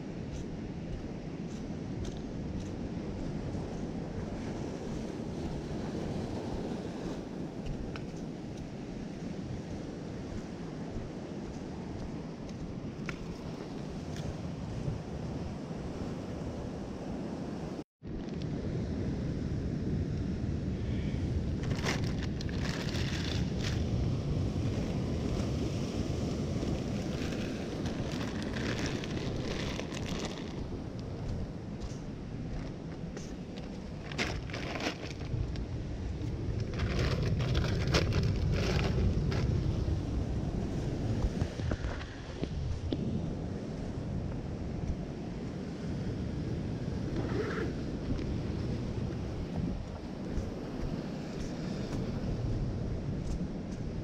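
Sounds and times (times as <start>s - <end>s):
wind on microphone: 0.0s - 54.0s
surf rumbling against rocks: 21.3s - 31.9s
plastic bag crinkling: 21.6s - 23.4s, 26.9s - 30.7s, 34.0s - 35.5s.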